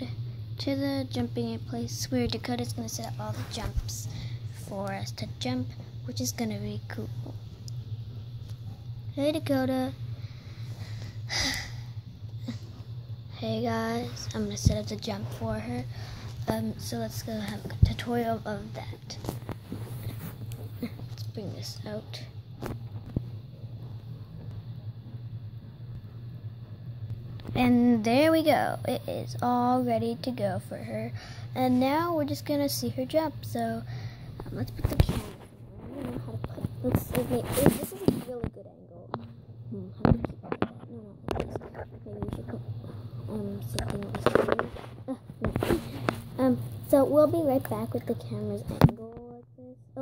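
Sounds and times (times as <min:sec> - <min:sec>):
child speaking: 0:00.0 - 0:07.2, 0:09.1 - 0:10.0, 0:13.3 - 0:19.2, 0:20.8 - 0:22.3, 0:27.6 - 0:50.0
steady low hum: 0:00.0 - 0:50.0.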